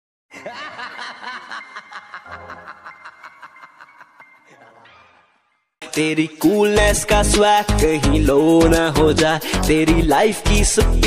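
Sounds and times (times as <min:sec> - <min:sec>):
laugh sound effect: 0:00.3 - 0:04.8.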